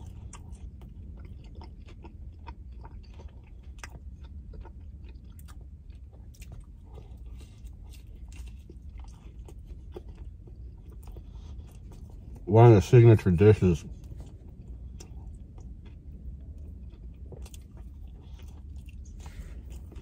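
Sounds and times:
chewing and biting: 0:00.0 - 0:12.5, 0:13.8 - 0:20.0
low steady hum: 0:00.0 - 0:20.0.

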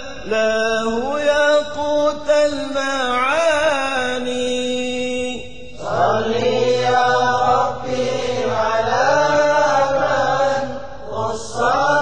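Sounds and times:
person chanting unaccompanied: 0:00.0 - 0:12.0.

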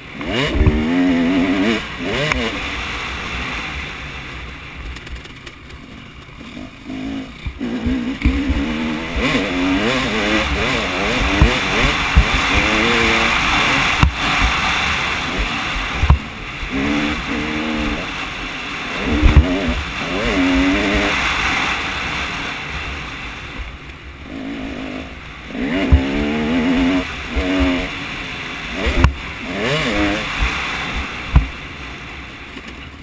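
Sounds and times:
motorbike engine revving: 0:00.0 - 0:32.8
wind rushing over microphone: 0:07.2 - 0:32.0
bike knocking over track: 0:10.6 - 0:13.0, 0:16.0 - 0:16.3, 0:31.3 - 0:31.6.

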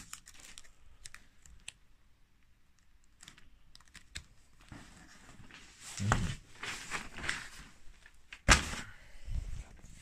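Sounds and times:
plastic sleeves rustling: 0:00.0 - 0:10.0.

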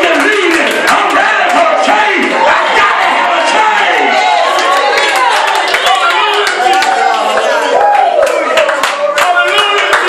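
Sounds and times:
congregation clapping: 0:00.0 - 0:02.6, 0:03.2 - 0:10.0
loud overlapping voices: 0:00.0 - 0:10.0.

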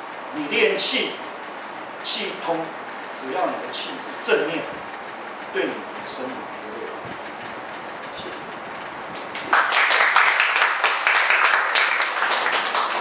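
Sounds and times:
small audience applauding: 0:09.2 - 0:13.0.

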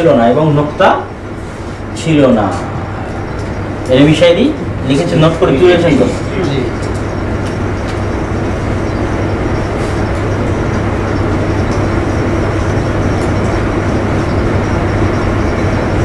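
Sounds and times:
constant low hum: 0:00.0 - 0:16.0.

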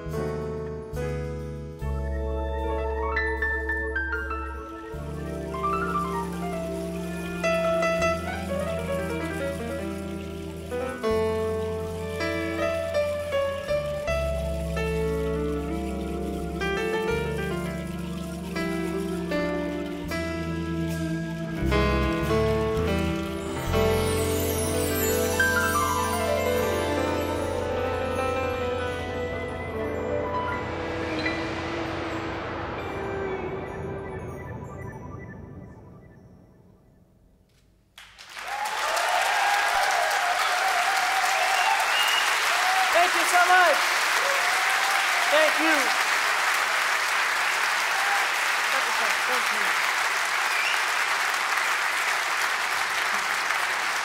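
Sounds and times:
jazz band playing softly: 0:00.0 - 0:34.4
chime-like shimmer: 0:23.5 - 0:35.1.

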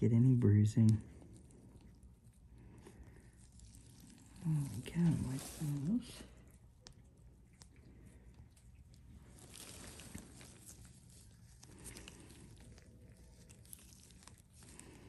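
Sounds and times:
faint rustling of gauze: 0:00.8 - 0:15.0.

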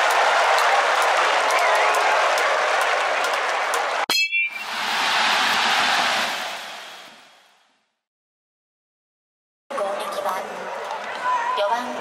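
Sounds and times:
stadium crowd noise: 0:00.0 - 0:07.6, 0:09.7 - 0:12.0
metal bat ping: 0:04.1 - 0:04.6.

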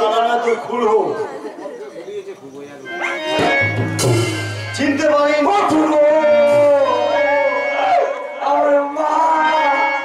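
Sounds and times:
quiet background voices talking: 0:00.5 - 0:03.6.

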